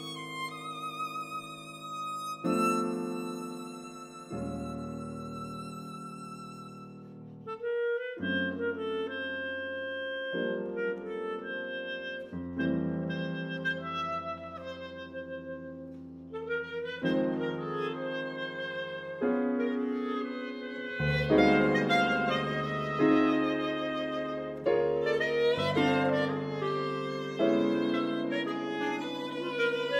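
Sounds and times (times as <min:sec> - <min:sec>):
held clarinet notes: 0:00.0 - 0:29.9
piano chords: 0:00.0 - 0:29.9.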